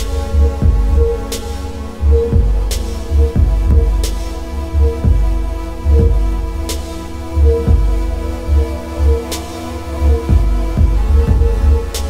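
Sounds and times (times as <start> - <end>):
deep bass pulses: 0.0 - 12.0
steady electronic drone: 0.0 - 12.0.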